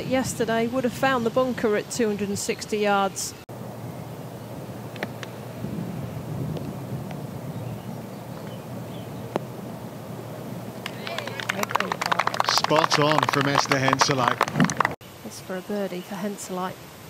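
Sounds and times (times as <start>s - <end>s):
outdoor wind: 0.0s - 17.0s.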